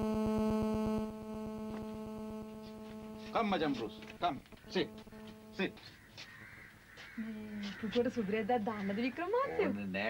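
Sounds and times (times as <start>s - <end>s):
person speaking: 1.9s - 6.0s
crow cawing faintly: 3.3s - 10.0s.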